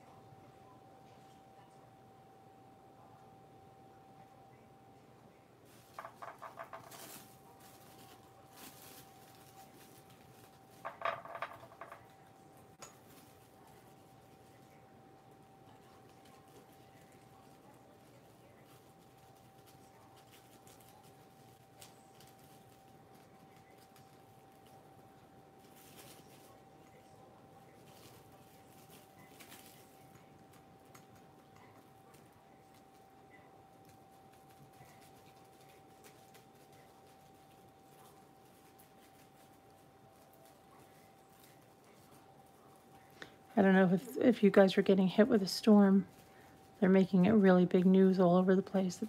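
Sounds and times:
faint high hum: 0.0 - 49.0
plastic wrap crinkling: 5.7 - 14.9, 15.6 - 49.0.

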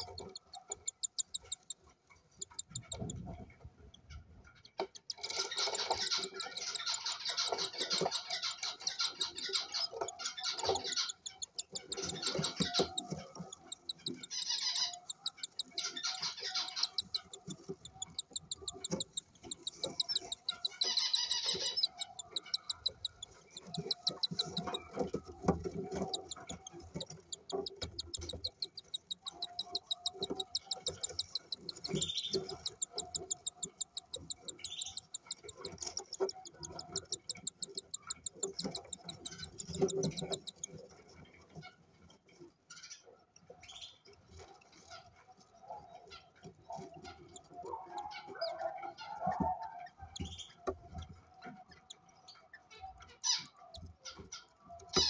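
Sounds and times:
chick cheeping: 0.0 - 3.4, 5.1 - 40.7.

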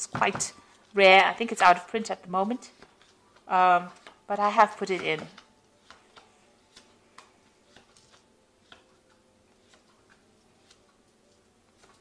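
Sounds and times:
cards clicking and tapping: 4.0 - 4.2, 4.8 - 10.8.

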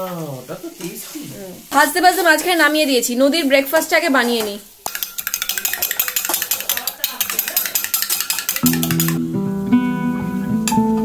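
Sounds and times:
metal spatula stirring in pan: 0.5 - 9.2
woman talking: 1.7 - 4.7.

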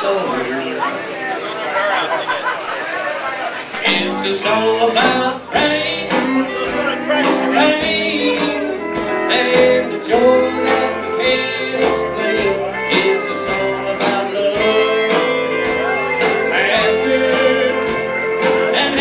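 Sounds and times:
drums steady beat: 0.0 - 19.0
bass: 3.7 - 19.0
electric guitar lead: 3.7 - 19.0.

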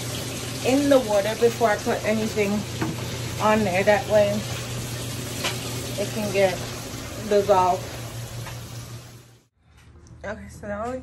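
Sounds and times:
washing machine filling with water: 0.0 - 9.5.

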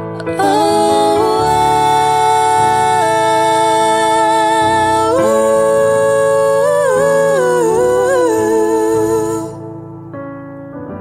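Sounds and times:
person singing wordless melody: 0.0 - 9.9.

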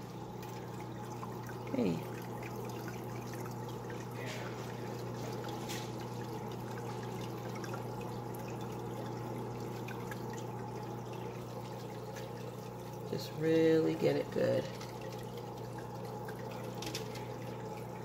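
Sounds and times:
low even hum: 0.0 - 18.0
water trickling and bubbling: 0.0 - 18.0
faint splashes or clicks: 16.6 - 17.4.

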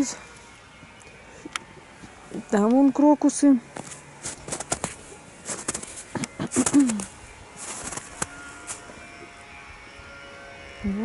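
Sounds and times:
footsteps: 3.7 - 9.1.

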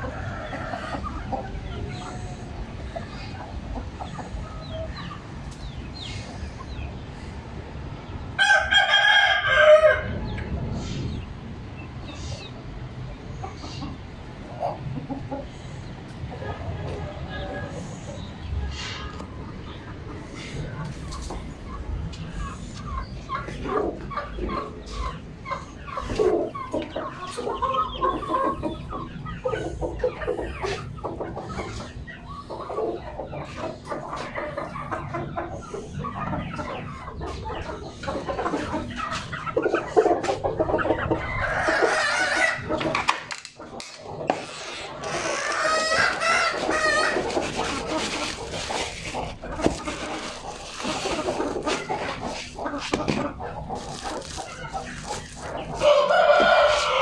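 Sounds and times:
chickens clucking and calling: 0.0 - 57.0.

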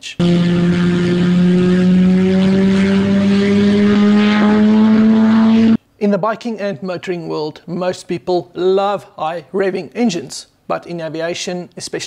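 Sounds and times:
rotary engine at high revs: 0.2 - 5.8.

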